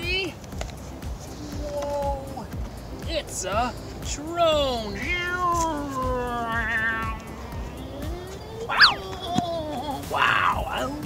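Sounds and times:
cartoon gliding whistle: 0:07.9 - 0:09.3.

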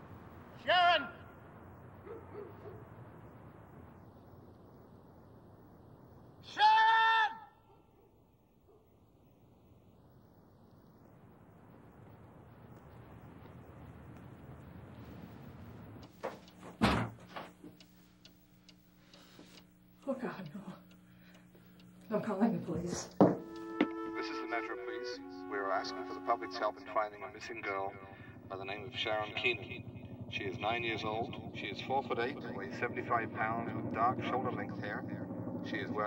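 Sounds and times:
faint clicks: 0:12.0 - 0:16.6, 0:17.4 - 0:22.2
front door closing thud: 0:16.2 - 0:17.6, 0:23.2 - 0:23.5.

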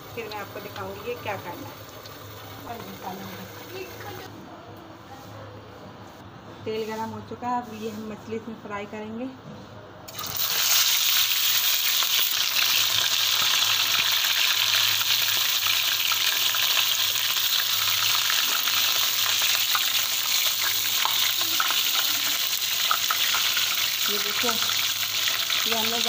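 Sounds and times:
fish sizzling in frying pan: 0:00.0 - 0:04.3, 0:10.1 - 0:26.0.

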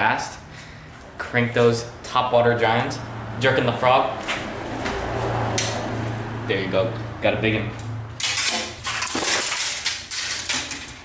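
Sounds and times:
fishing rods clattering: 0:08.2 - 0:11.0.

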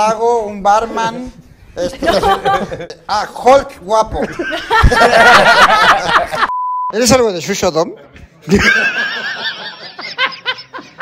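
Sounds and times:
man laughing: 0:01.9 - 0:03.0, 0:04.2 - 0:06.5.

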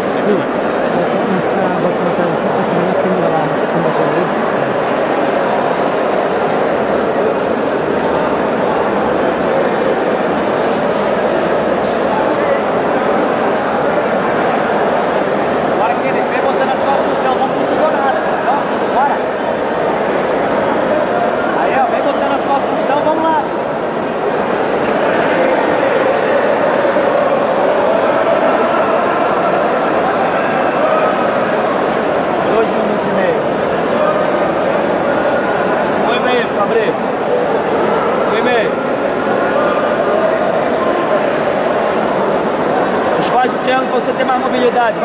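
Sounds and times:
crowd talking and shouting: 0:00.0 - 0:45.0.

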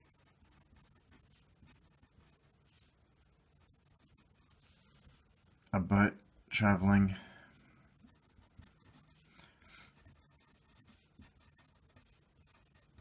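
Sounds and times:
pencil scratching on paper: 0:00.0 - 0:05.3, 0:08.0 - 0:13.0.

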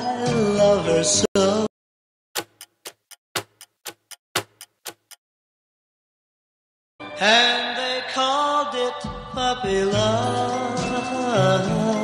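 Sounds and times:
clock ticking: 0:02.4 - 0:05.2.

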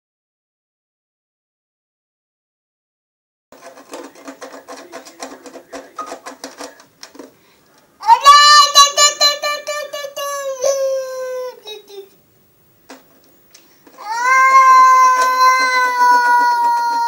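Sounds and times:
toy balalaika strummed: 0:03.6 - 0:06.8
toddler singing high note: 0:08.0 - 0:11.6.

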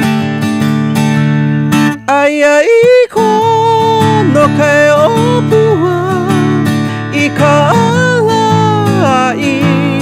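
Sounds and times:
strummed acoustic guitar: 0:00.0 - 0:10.0
man singing: 0:02.0 - 0:10.0.

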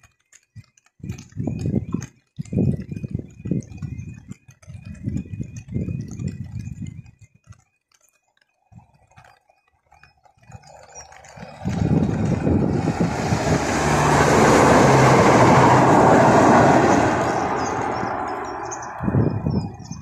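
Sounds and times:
train wheels rumbling on rails: 0:11.3 - 0:20.0.

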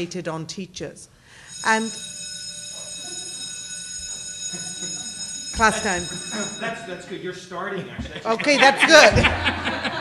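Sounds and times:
high-pitched timer alarm buzzing: 0:01.4 - 0:07.1.

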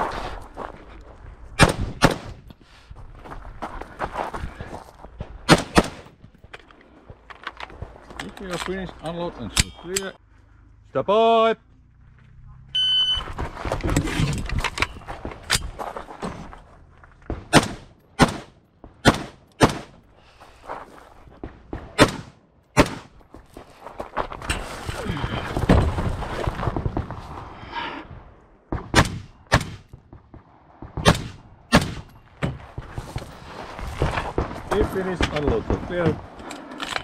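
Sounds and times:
rifle shots: 0:01.6 - 0:02.4, 0:05.5 - 0:06.1, 0:17.5 - 0:20.0, 0:21.9 - 0:23.1, 0:30.8 - 0:32.1
shot timer beep: 0:12.8 - 0:13.2
gear rattling and rustling: 0:13.2 - 0:17.4.

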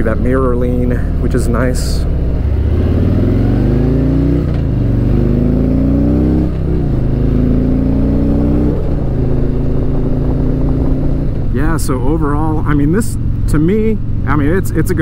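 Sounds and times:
motorcycle engine accelerating: 0:00.0 - 0:15.0.

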